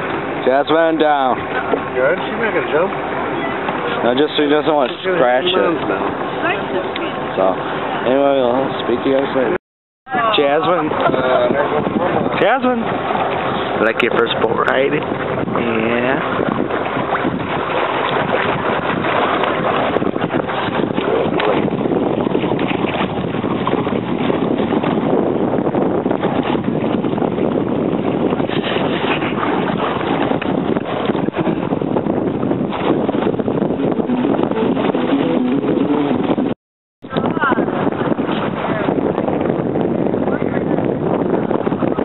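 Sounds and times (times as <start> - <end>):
water noise: 0.0 - 42.0
wind on microphone: 0.0 - 42.0.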